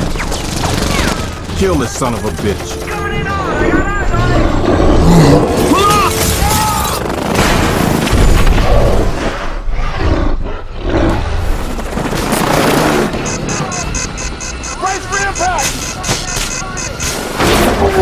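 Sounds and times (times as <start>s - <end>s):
dramatic music: 0.0s - 9.1s
helicopter engine and rotor: 6.1s - 8.1s, 11.6s - 17.4s.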